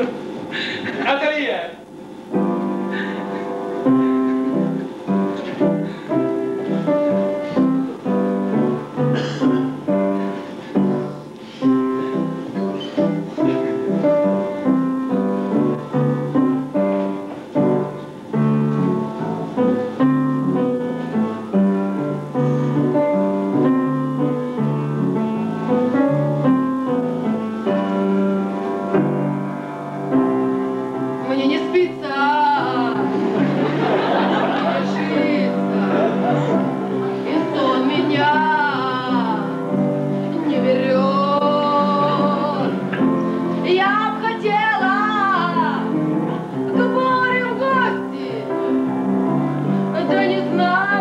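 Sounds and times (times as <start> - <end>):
piano playing a tune: 2.1 - 51.0.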